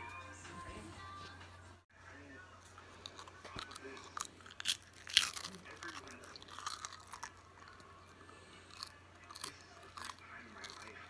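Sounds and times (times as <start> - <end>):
chewing crunchy snack: 3.0 - 11.0.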